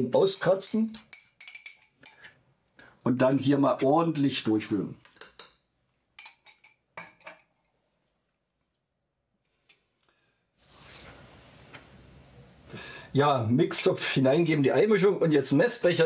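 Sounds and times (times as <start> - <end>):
faint hiss: 9.5 - 14.7.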